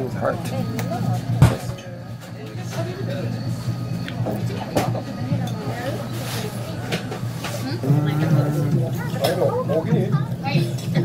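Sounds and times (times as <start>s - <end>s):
indistinct voices of diners: 0.0s - 11.0s
steady low hum: 0.0s - 11.0s.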